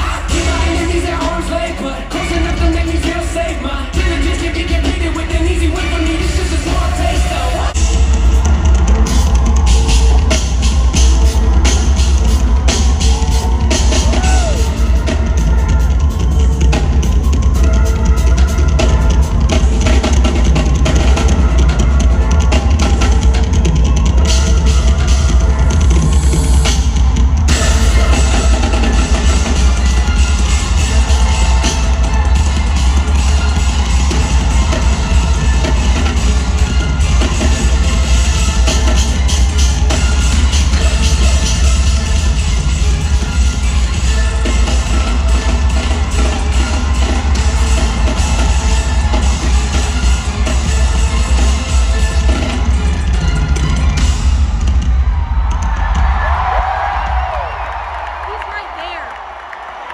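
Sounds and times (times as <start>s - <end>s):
drum kit solo: 0.0s - 59.0s.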